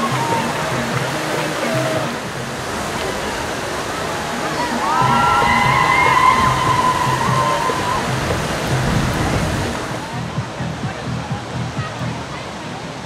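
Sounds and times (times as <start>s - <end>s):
crowd voices: 0.0s - 13.0s
fountain water splashing: 0.0s - 13.0s
music: 0.0s - 13.0s.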